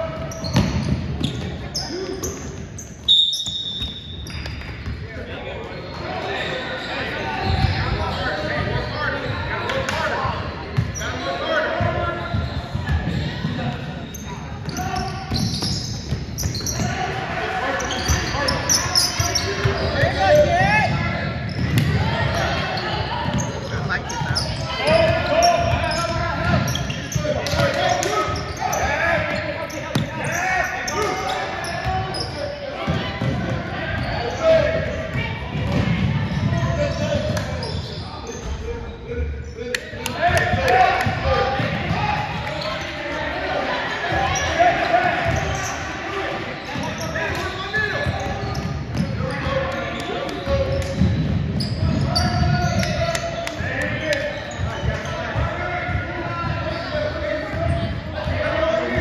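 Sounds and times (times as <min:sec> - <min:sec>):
voices in a gym: 0:00.0 - 0:59.0.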